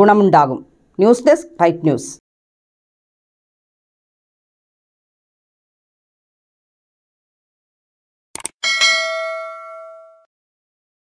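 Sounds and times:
notification bell ding: 8.6s - 10.3s.

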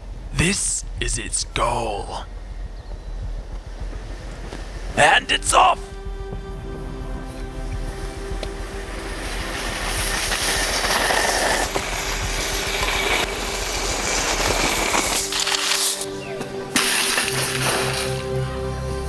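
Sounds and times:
background music: 0.6s - 19.0s
trolley wheels rattling on asphalt: 8.7s - 16.2s.

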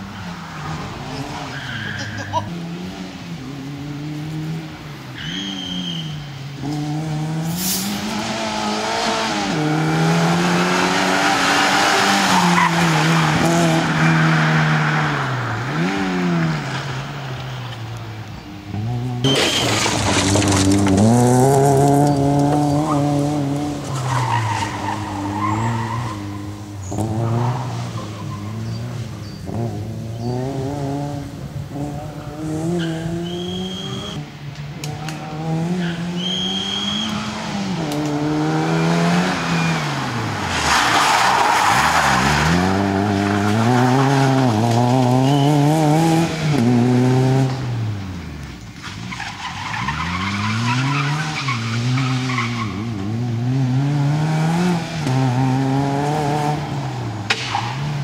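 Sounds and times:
rally car engine revving: 0.0s - 58.0s
tyres skidding: 0.0s - 58.0s
tyre squeals: 5.2s - 6.3s, 23.8s - 29.5s, 32.6s - 34.2s, 35.8s - 37.4s, 39.3s - 45.8s.

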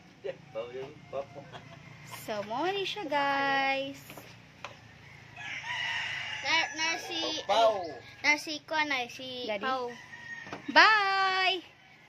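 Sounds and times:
rooster crowing: 0.5s - 2.2s, 4.7s - 8.4s, 9.8s - 12.0s.

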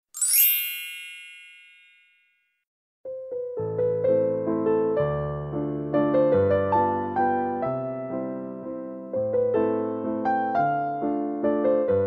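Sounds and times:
high bell-like chime: 0.1s - 2.6s.

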